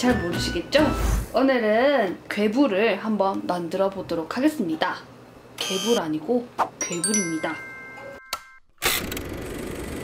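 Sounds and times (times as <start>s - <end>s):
bell-like chime notes: 6.8s - 8.6s
mechanical whirring rattle: 8.8s - 10.0s.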